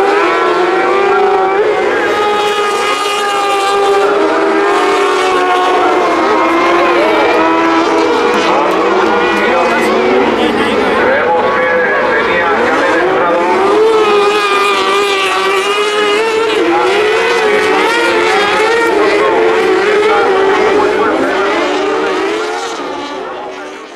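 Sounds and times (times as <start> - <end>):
racing buggy engines revving: 0.0 - 23.9.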